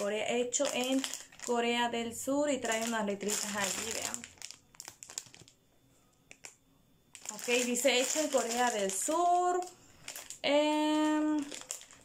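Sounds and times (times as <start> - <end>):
plastic packet crinkling: 0.0 - 1.8, 2.6 - 5.6, 6.3 - 12.0.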